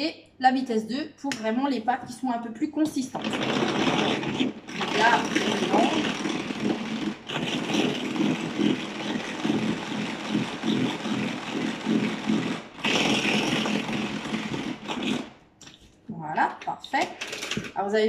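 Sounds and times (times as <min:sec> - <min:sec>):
hand-crank mixer whirring: 0:02.9 - 0:15.5, 0:16.9 - 0:17.8.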